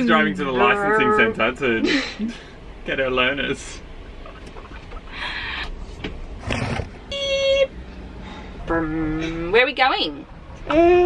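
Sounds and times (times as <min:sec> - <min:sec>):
bus engine running: 0:00.0 - 0:11.0.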